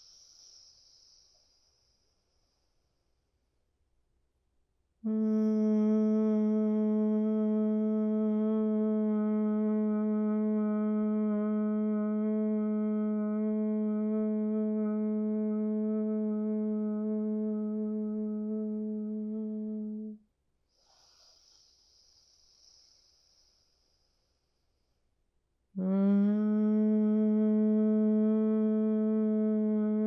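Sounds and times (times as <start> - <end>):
woman humming one low note: 5.0 - 20.2, 25.8 - 30.0
breath in through nose: 20.7 - 24.3.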